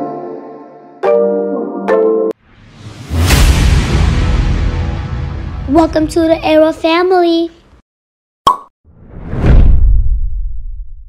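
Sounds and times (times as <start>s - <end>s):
whoosh into deep rumble: 8.9s - 11.0s.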